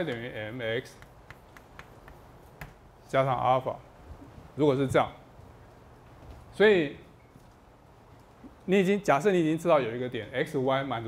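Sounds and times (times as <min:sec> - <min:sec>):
chalk clicking on blackboard: 0:00.9 - 0:02.8.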